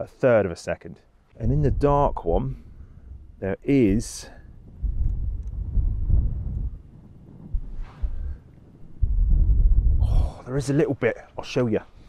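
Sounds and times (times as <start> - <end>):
wind buffeting microphone: 1.4 - 12.0.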